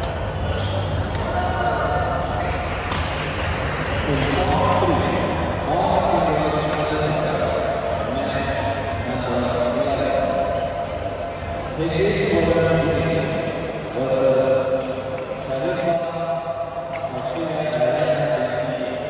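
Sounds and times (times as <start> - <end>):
murmur of many voices: 0.0 - 19.0
rackets hitting shuttlecocks: 1.0 - 1.6, 2.6 - 4.8, 5.4 - 7.8.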